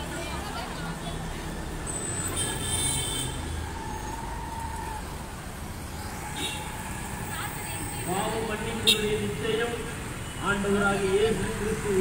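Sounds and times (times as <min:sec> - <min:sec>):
auto-rickshaw engines passing: 0:00.0 - 0:12.0
motorbikes going by: 0:00.0 - 0:12.0.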